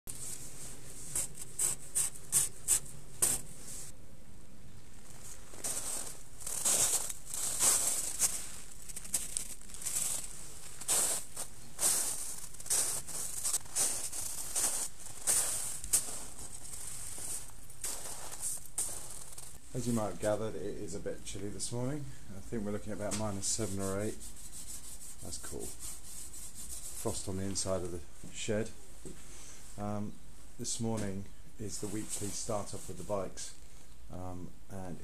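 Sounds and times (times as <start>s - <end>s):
footsteps crunching through snow: 0.1s - 3.9s, 4.8s - 20.4s.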